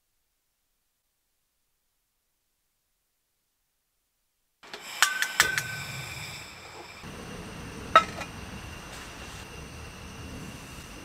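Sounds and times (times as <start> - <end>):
stove igniter clicks: 4.6 - 6.0
gas flame rushing: 4.6 - 11.0.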